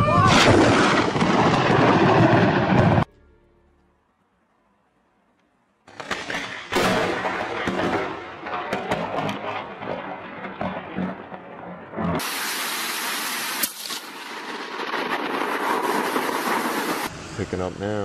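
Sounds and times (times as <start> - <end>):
storm rushing with crackles: 0.0 - 3.1, 6.5 - 17.8
sharp crack: 5.8 - 17.1
heavy rain hiss: 12.2 - 18.0.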